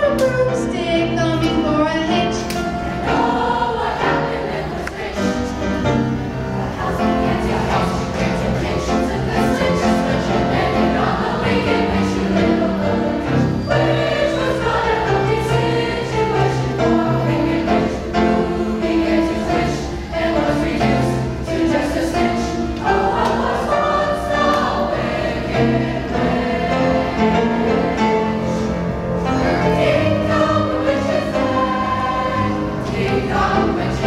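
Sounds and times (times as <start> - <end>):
children's choir singing: 0.0 - 34.0.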